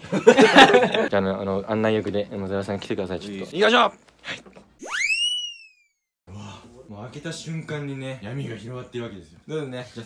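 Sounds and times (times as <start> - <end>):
whistle-like tone gliding in pitch: 4.8 - 6.0.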